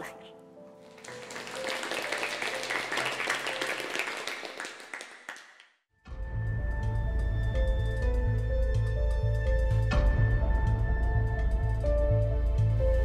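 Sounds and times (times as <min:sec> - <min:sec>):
soft music: 0:00.0 - 0:04.6, 0:06.1 - 0:13.0
applause: 0:00.8 - 0:05.8
music with deep pulsing bass: 0:06.1 - 0:13.0.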